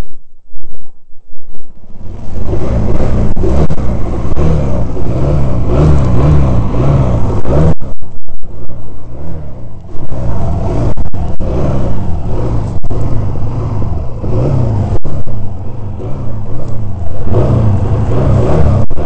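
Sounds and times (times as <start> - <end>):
motorcycle engine at low revs: 1.5 - 19.0.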